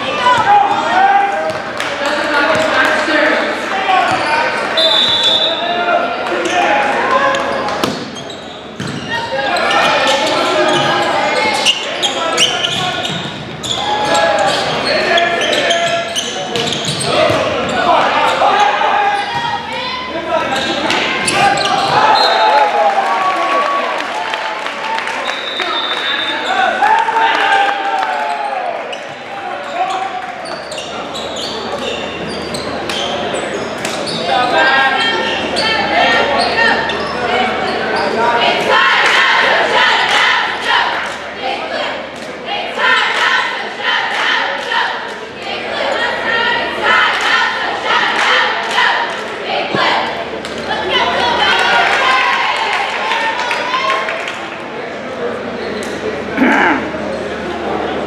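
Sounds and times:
voices talking and calling out: 0:00.0 - 0:24.0, 0:25.2 - 0:58.0.

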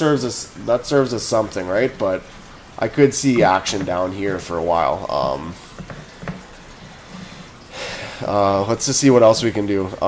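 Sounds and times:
man talking: 0:00.0 - 0:05.6, 0:08.2 - 0:10.0.

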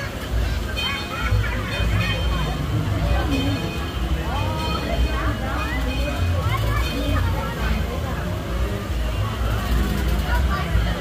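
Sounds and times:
chatter of riders: 0:00.0 - 0:11.0.

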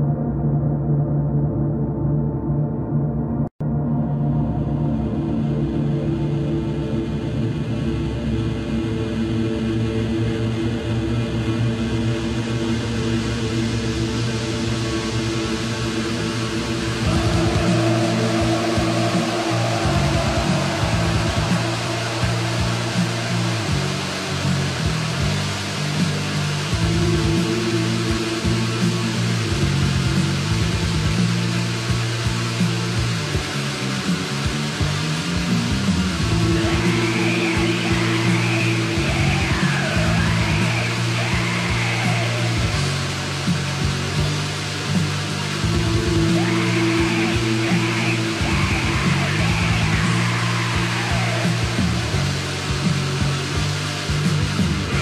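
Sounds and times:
sustained low tones: 0:00.0 - 0:55.0
distorted guitar: 0:03.6 - 0:55.0
fast drumming: 0:17.0 - 0:55.0.

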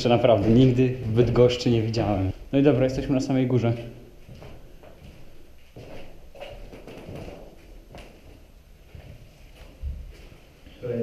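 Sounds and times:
footsteps on wooden floor: 0:00.0 - 0:02.0, 0:03.8 - 0:10.6.

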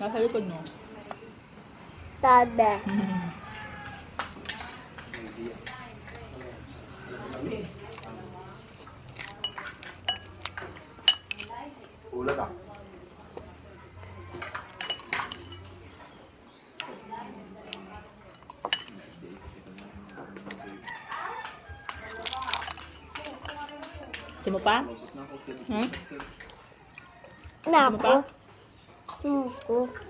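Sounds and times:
voices: 0:00.0 - 0:30.0
cutlery clinking against plates: 0:03.5 - 0:11.6, 0:14.2 - 0:16.2, 0:17.7 - 0:29.2.

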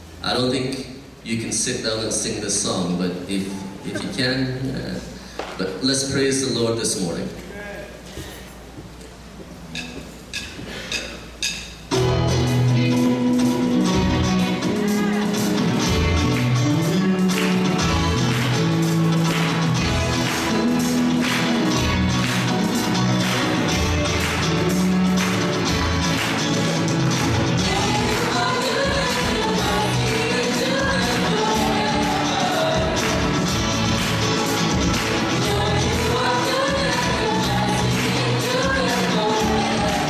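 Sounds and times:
band playing gospel song: 0:11.9 - 0:40.0
person singing: 0:14.4 - 0:16.3, 0:27.6 - 0:33.8, 0:35.1 - 0:40.0.

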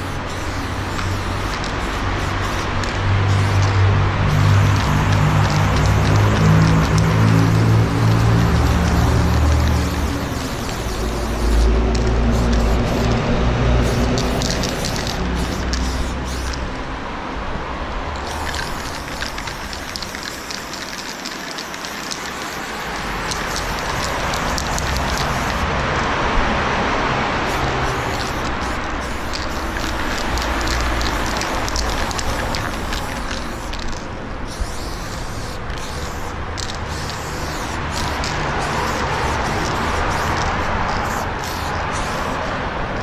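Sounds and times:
spray paint can hissing: 0:00.0 - 0:16.8, 0:18.2 - 0:25.8, 0:27.4 - 0:42.6.

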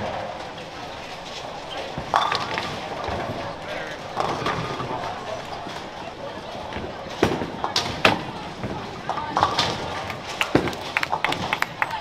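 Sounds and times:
bowling balls striking pins: 0:00.0 - 0:11.8
background murmur: 0:00.0 - 0:12.0.

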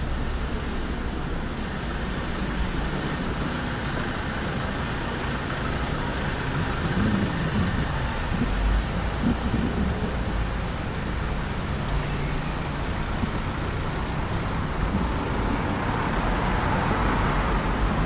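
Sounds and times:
car engines humming: 0:00.0 - 0:18.0.

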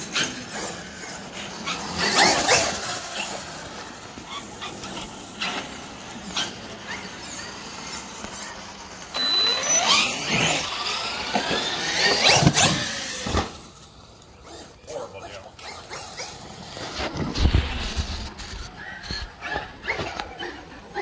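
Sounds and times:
electric motor whining: 0:00.0 - 0:20.5.

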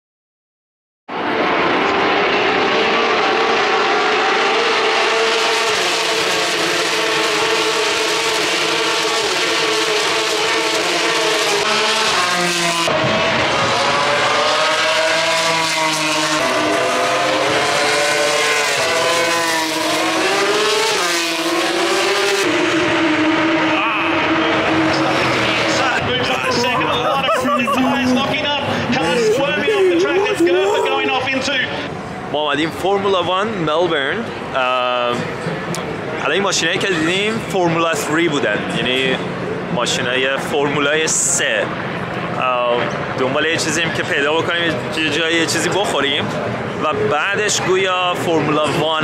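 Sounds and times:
race cars passing at high revs: 0:01.1 - 0:49.0.

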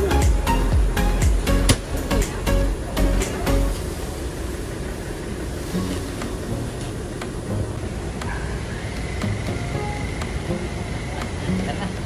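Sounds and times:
low rumble of vehicle engines: 0:00.0 - 0:12.0.

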